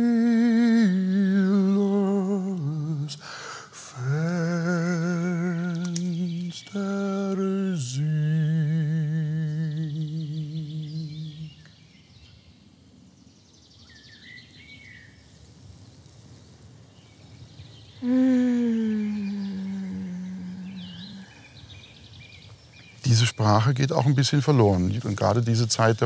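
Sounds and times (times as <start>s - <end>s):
man humming: 0.0s - 11.7s, 18.0s - 21.4s
faint bird chirps: 0.0s - 25.8s.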